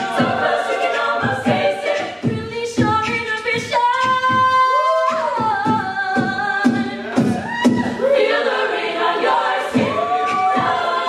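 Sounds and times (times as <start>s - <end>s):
vocal percussion beat: 0.0s - 11.0s
women singing a cappella harmony: 0.0s - 11.0s.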